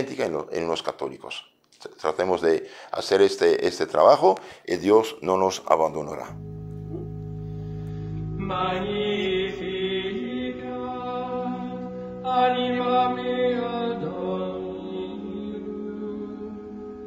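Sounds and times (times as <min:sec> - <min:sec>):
slow chanted vocal music: 0:06.4 - 0:17.0.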